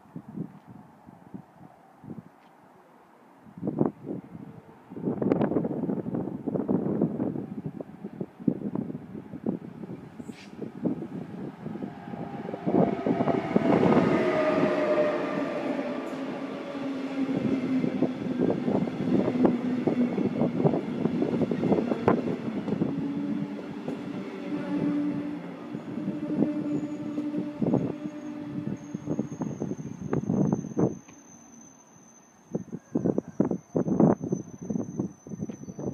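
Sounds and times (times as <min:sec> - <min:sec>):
train passing: 0:05.0 - 0:35.9
falling tones: 0:11.1 - 0:32.1.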